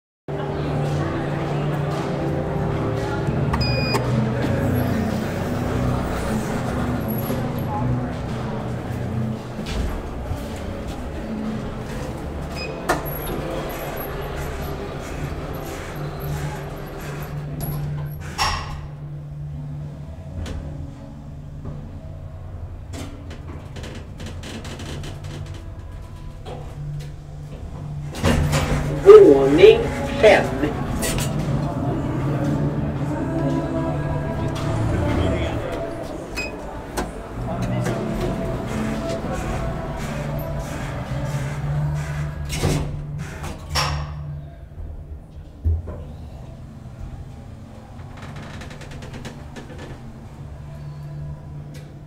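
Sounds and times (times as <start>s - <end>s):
elevator doors sliding open: 0.3s - 44.4s, 45.2s - 52.0s.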